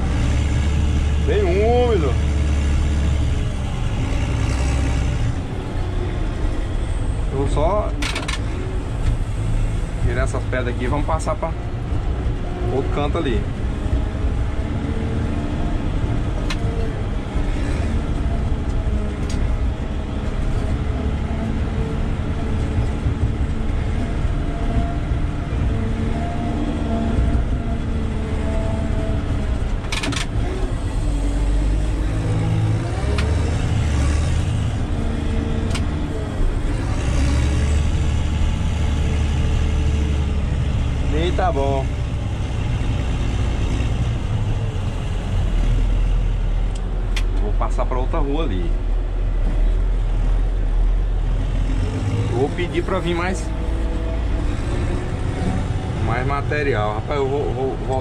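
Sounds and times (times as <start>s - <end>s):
diesel engine revving: 0.0s - 58.0s.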